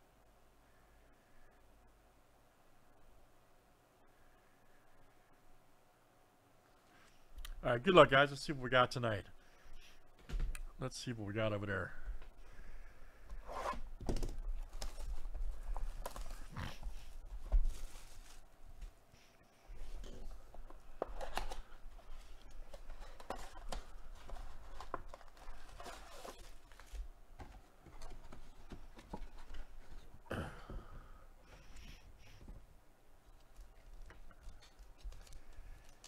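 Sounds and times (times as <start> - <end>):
foil packs handled: 14.5 - 18.8, 21.2 - 27.2.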